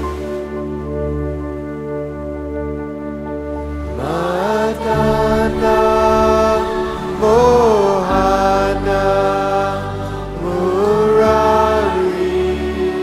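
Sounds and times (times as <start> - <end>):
sustained instrumental chords: 0.0 - 13.0
man singing a chant: 4.0 - 13.0.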